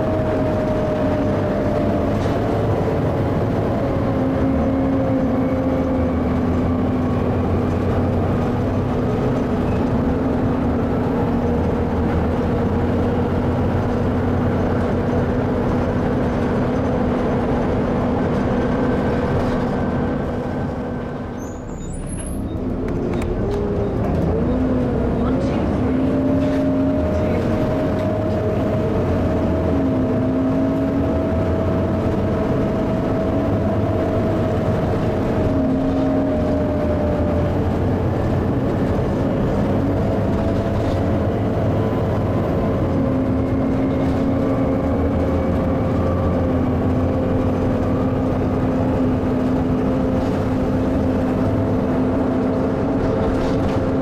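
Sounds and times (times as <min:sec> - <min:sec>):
bus diesel engine rumble: 0:00.0 - 0:54.0.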